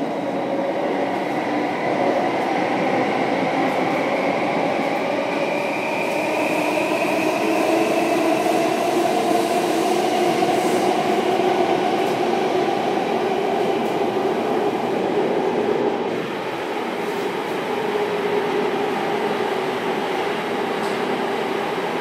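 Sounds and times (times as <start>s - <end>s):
metro train rumbling in tunnel: 0.0s - 22.0s.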